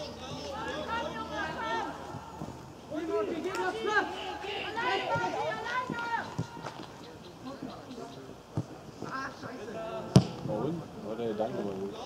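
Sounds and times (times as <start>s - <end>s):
players shouting: 0.0s - 7.0s
football kick thud: 10.1s - 10.5s.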